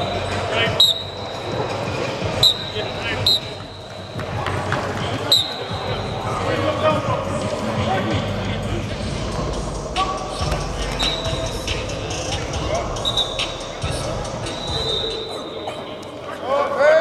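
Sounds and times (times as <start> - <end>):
background voices: 5.9 - 16.5
high squeaks: 10.8 - 12.2, 12.8 - 15.8.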